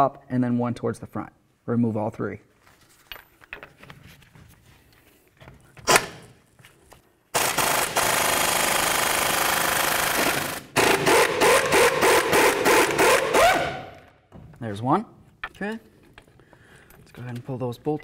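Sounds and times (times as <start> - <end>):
pneumatic impact wrench hammering: 5.8 - 6.3, 7.4 - 14.0.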